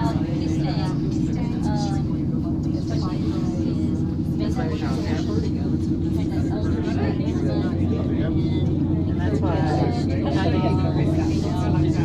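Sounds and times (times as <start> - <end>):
cable car cabin hum and rumble: 0.0 - 12.0
passengers talking: 0.0 - 12.0.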